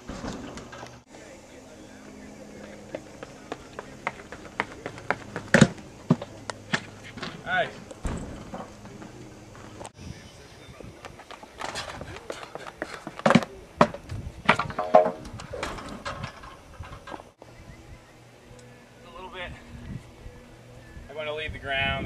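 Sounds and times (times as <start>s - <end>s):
voices calling out: 0.0s - 22.0s
thuds and knocks: 8.0s - 9.1s.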